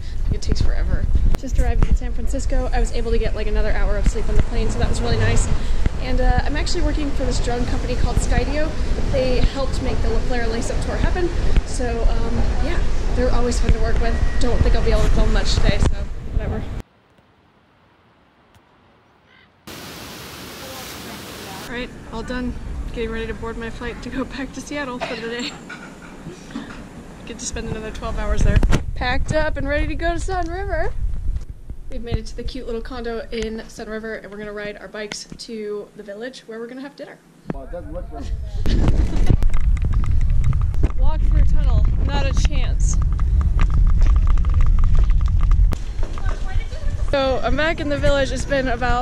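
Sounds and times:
wind and tyre rumble: 0:00.0 - 0:16.9, 0:27.4 - 0:33.2, 0:37.6 - 0:49.0
bike ticking and rattling: 0:39.0 - 0:46.6.

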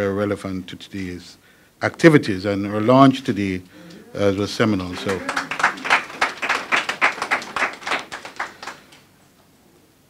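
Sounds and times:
audience applause: 0:03.8 - 0:09.0.

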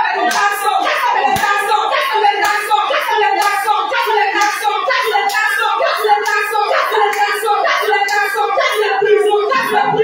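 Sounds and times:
several voices praying aloud: 0:00.0 - 0:10.0
hand claps: 0:00.2 - 0:02.8, 0:03.4 - 0:08.4.

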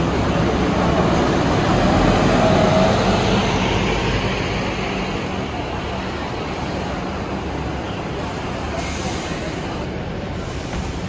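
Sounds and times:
bus diesel engine idling: 0:02.8 - 0:11.0
brief hiss: 0:08.3 - 0:09.8.

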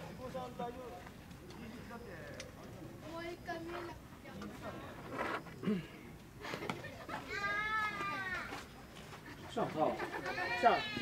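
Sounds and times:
small child calling out: 0:07.3 - 0:08.5, 0:10.2 - 0:11.0.

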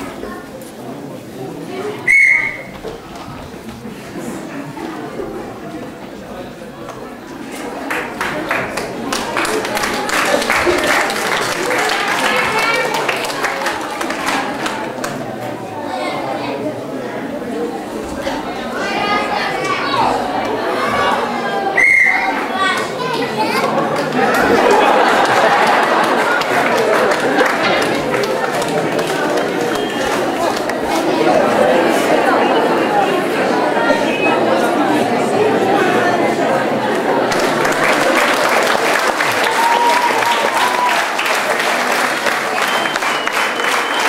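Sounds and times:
children and audience chattering: 0:00.0 - 0:44.0
referee whistle blast: 0:02.1 - 0:02.7, 0:21.8 - 0:22.3.

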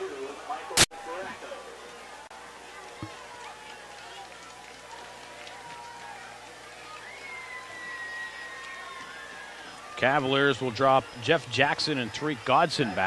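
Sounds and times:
distant crowd chatter: 0:00.0 - 0:13.0.

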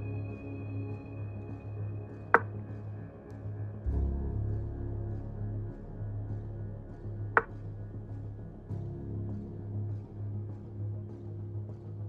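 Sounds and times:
calm background music: 0:00.0 - 0:12.0
steady low hum: 0:00.0 - 0:12.0.

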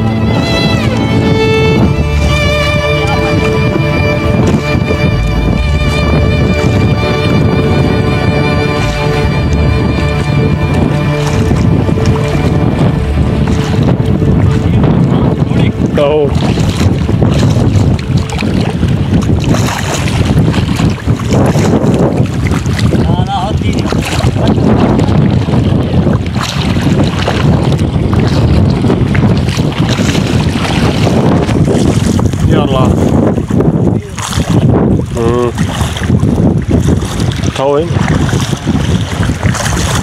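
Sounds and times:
wind buffeting microphone: 0:00.0 - 0:40.0.

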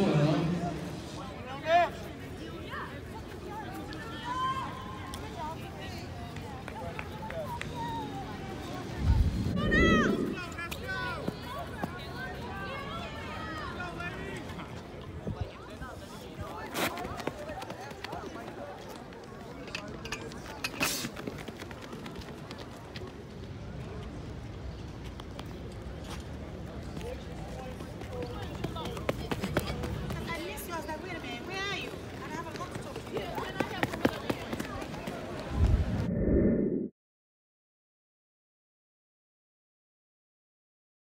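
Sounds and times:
people talking and calling out: 0:00.0 - 0:22.3.

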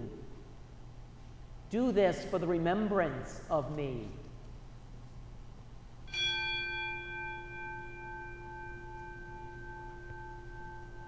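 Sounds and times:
bell ringing: 0:06.1 - 0:11.0.

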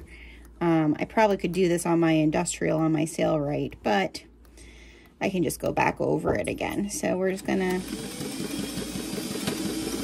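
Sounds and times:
sewing machine running: 0:07.4 - 0:10.0.

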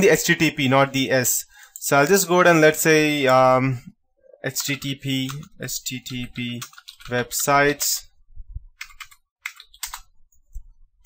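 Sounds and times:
computer keyboard keystrokes: 0:04.5 - 0:07.9, 0:08.8 - 0:10.1.

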